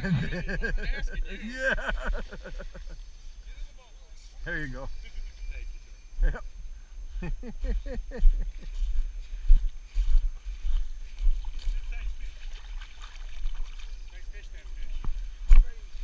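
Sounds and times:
man laughing: 0.0s - 3.0s, 7.2s - 8.8s
faint river water: 8.3s - 16.0s.

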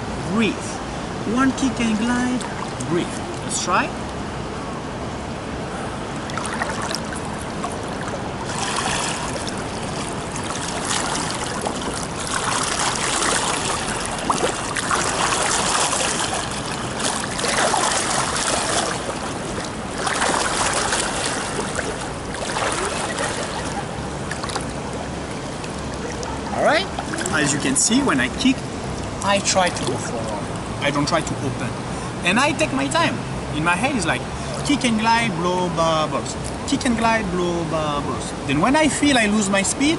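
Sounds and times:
pool water splashing: 0.0s - 39.9s.

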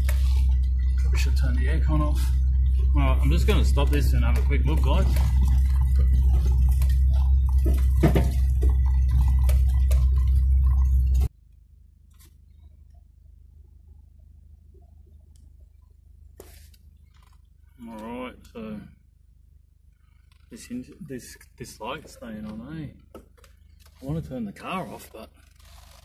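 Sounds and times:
faint low hum: 0.0s - 25.9s
vehicle engine and road rumble: 0.0s - 26.0s
knocks and rattles from bumps: 3.3s - 11.3s.

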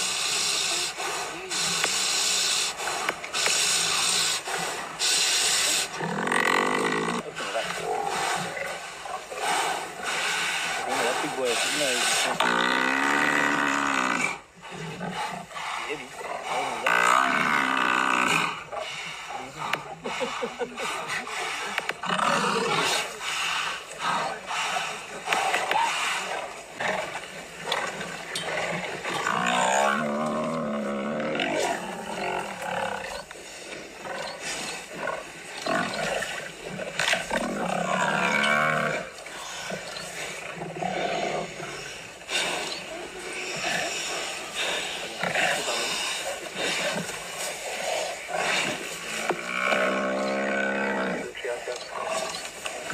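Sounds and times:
lions growling: 0.0s - 52.9s.

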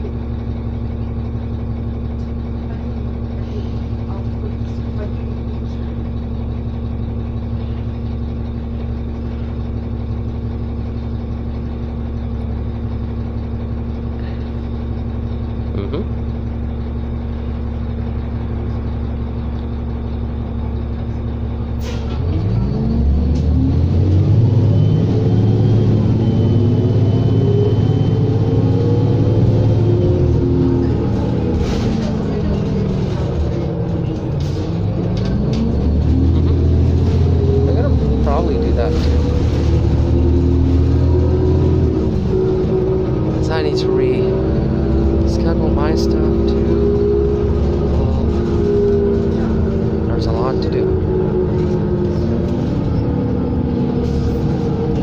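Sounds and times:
bus engine idling and revving: 0.0s - 55.0s.

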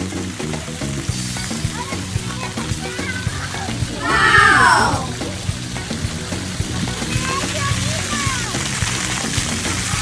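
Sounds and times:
background music with steady beat: 0.0s - 10.0s
high falling cry: 4.0s - 5.2s.

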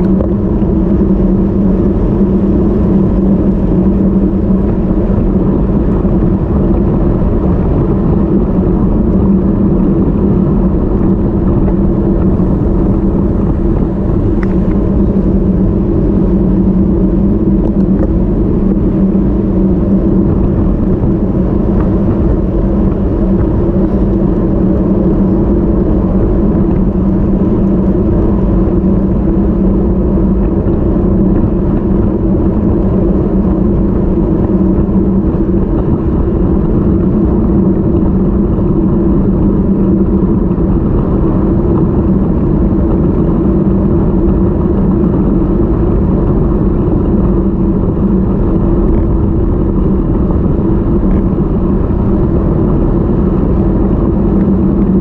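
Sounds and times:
bike tyre hum on asphalt: 0.0s - 55.0s
steady low hum: 0.0s - 55.0s
wind rushing over microphone: 0.0s - 55.0s.

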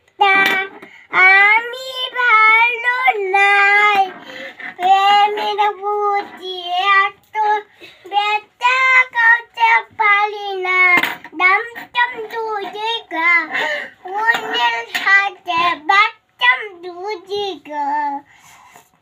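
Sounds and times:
child singing: 0.1s - 18.3s.

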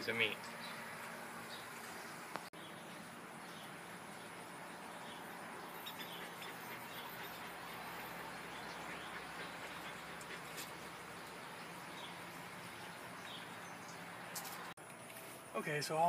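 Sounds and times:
faint outdoor background noise: 0.0s - 16.0s.

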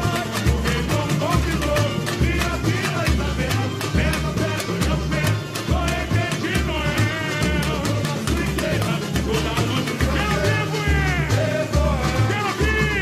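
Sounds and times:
deep surdo drum beats: 0.0s - 13.0s
singing over drums: 0.0s - 13.0s
tamborim and snare strokes: 0.0s - 13.0s.

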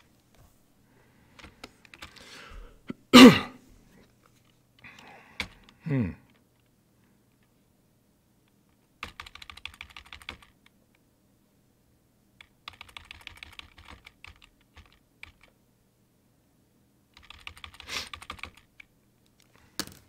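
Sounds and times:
computer keyboard typing: 1.4s - 2.2s, 5.4s - 5.7s, 9.0s - 10.6s, 12.4s - 15.6s, 17.1s - 18.9s.

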